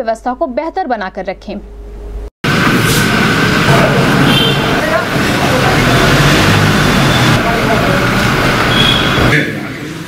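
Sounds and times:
car driving off: 0:02.4 - 0:10.0.

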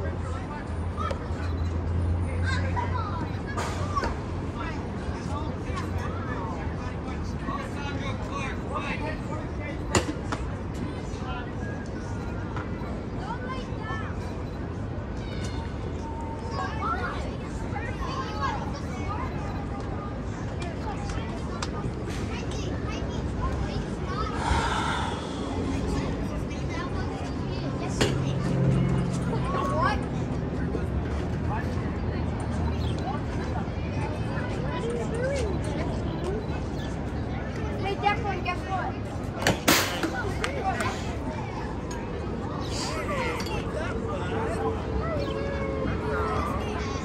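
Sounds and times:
distant shouting and chatter: 0:00.0 - 0:47.0
low city rumble: 0:00.0 - 0:47.0
distant voices: 0:00.3 - 0:47.0.

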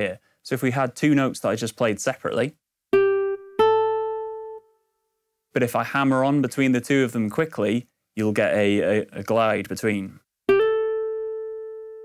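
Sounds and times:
plucked guitar note hammer-on: 0:02.9 - 0:04.7, 0:10.5 - 0:12.0.

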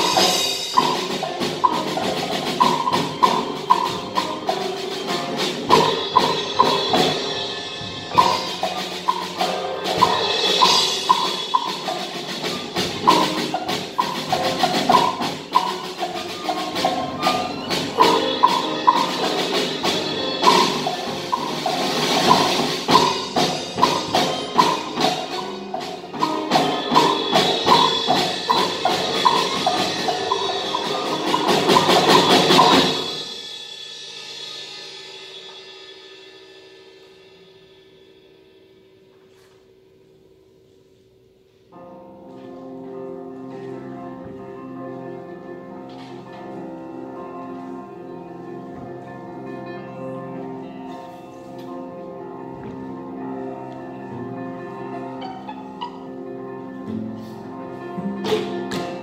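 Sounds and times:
avant-garde chamber ensemble: 0:00.0 - 0:39.0, 0:40.4 - 0:59.0.

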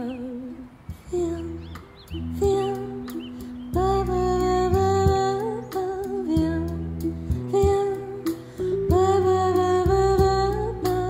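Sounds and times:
band music: 0:00.9 - 0:11.0.

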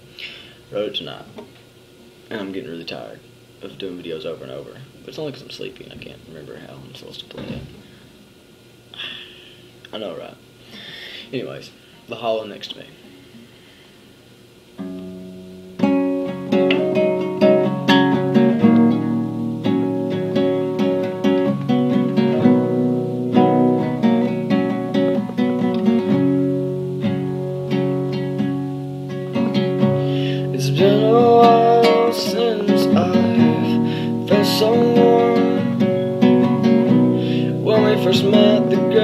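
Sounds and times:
acoustic guitar picked chords: 0:14.8 - 0:39.0
man singing: 0:30.2 - 0:36.2, 0:37.3 - 0:39.0.

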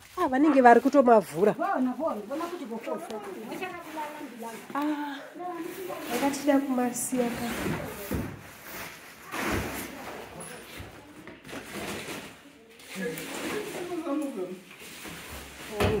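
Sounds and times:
packaging rustling: 0:01.7 - 0:05.0.

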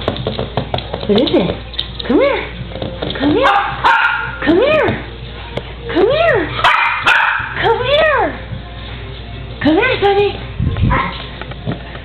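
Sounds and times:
small dog barking: 0:03.4 - 0:04.4, 0:06.6 - 0:07.6, 0:10.9 - 0:11.2.

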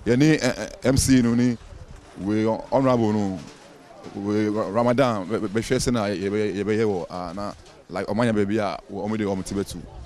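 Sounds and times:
man talking: 0:00.0 - 0:01.6, 0:02.2 - 0:10.0.

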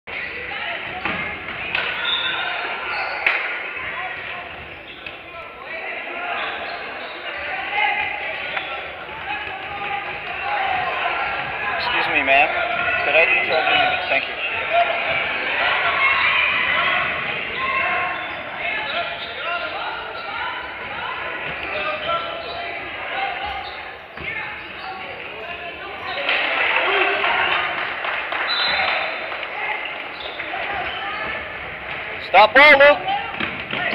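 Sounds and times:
spectators chattering: 0:00.0 - 0:33.9.

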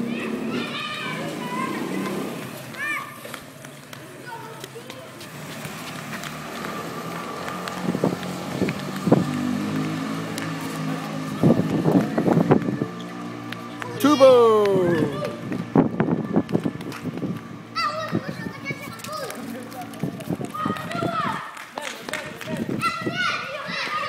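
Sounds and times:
children's voices and calls: 0:00.0 - 0:24.0.

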